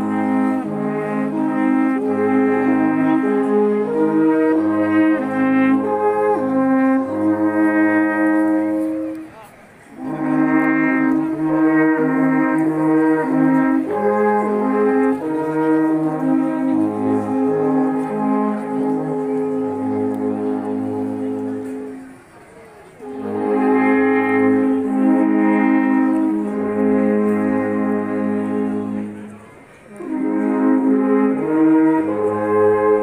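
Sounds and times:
alphorns playing in harmony: 0:00.0 - 0:09.3, 0:09.9 - 0:22.1, 0:23.0 - 0:33.0.

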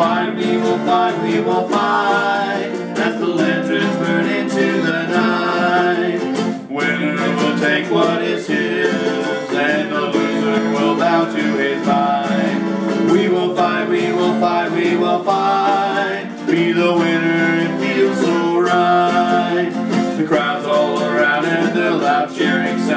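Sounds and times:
acoustic guitar strummed: 0:00.0 - 0:22.9
men singing: 0:00.0 - 0:22.9
ukulele strummed: 0:00.0 - 0:22.9.

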